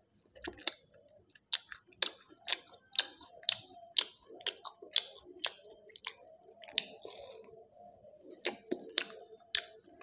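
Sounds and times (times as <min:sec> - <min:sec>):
chewing fried food: 0:00.0 - 0:10.0.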